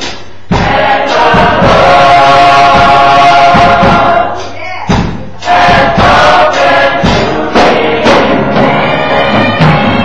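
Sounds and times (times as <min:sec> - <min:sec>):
cymbals: 0:00.0 - 0:10.0
gospel choir singing: 0:00.0 - 0:10.0
low drum strokes: 0:00.0 - 0:10.0.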